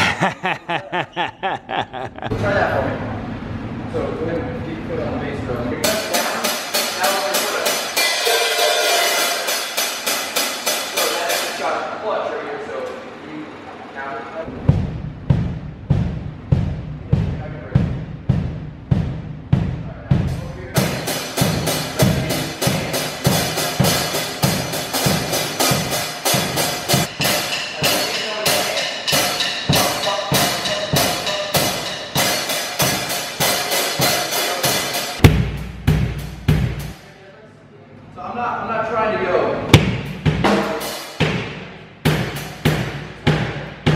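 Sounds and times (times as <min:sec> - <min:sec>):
hi-hat strikes: 0:05.8 - 0:11.8, 0:14.6 - 0:37.1, 0:39.8 - 0:43.9
bass drum pulse: 0:14.5 - 0:20.9, 0:35.2 - 0:36.9, 0:39.8 - 0:40.5
ringing low drum hit: 0:35.2 - 0:36.9.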